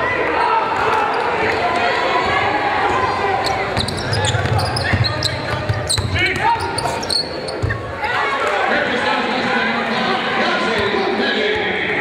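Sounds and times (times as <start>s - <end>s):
sneaker squeaks: 3.4s - 8.0s.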